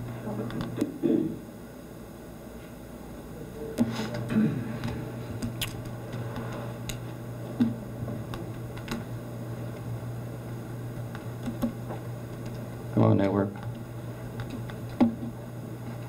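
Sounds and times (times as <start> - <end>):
low electrical hum: 0.0 - 16.0
laptop clicks and taps: 11.1 - 12.6.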